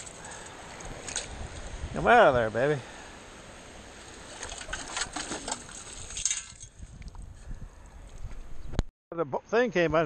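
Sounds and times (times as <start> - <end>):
sand and shells rattling in metal scoop: 4.2 - 6.8.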